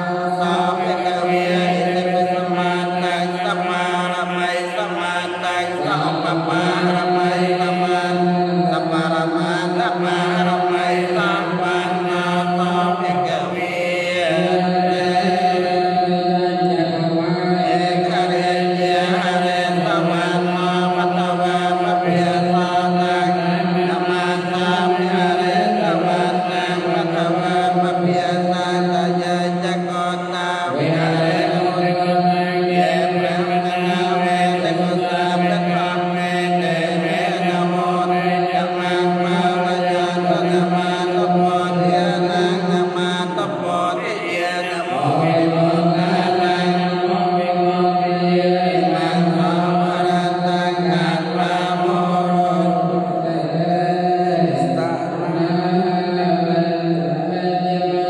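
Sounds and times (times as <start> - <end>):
amplified leading voice: 0.0 - 58.0
monks chanting: 0.0 - 58.0.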